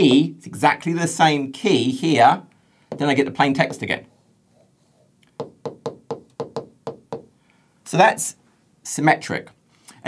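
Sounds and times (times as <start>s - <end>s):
stylus tapping on glass: 5.4s - 7.3s.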